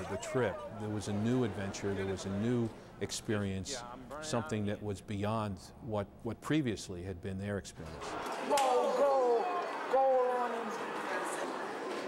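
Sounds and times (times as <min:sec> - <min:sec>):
echoing busy hall background: 0:00.0 - 0:05.8, 0:07.8 - 0:12.0.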